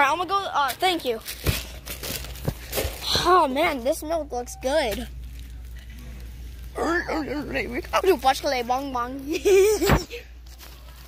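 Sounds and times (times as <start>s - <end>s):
plastic wrapping crinkling: 0.7s - 3.2s, 4.9s - 6.8s.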